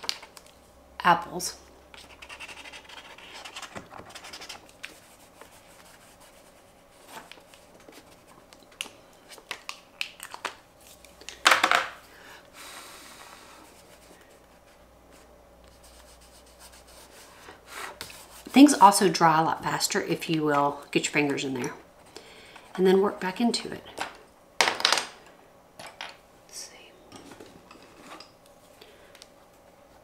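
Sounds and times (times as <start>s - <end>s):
marker scribbling on paper: 2.0s - 6.6s.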